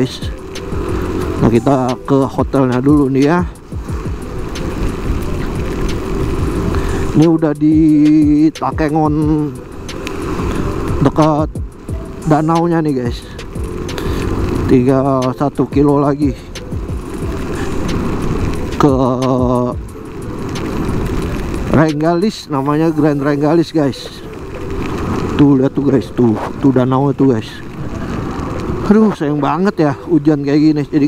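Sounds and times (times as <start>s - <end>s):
tyre noise on wet road: 0.0s - 31.0s
wind rush on microphone: 0.0s - 31.0s.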